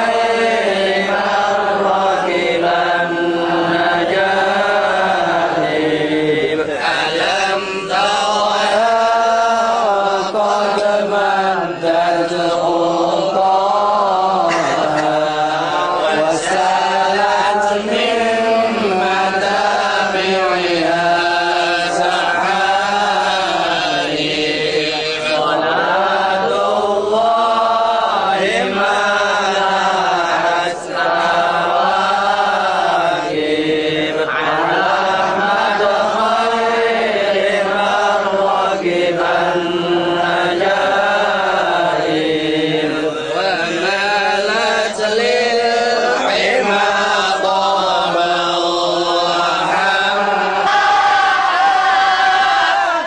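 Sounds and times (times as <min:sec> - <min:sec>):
men chanting devotional text: 0:00.0 - 0:53.0.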